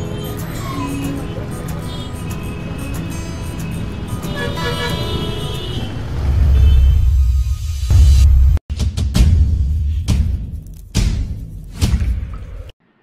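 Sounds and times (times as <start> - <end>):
street traffic: 0.0 - 8.6
music: 0.0 - 13.0
car horn toots: 4.2 - 7.2.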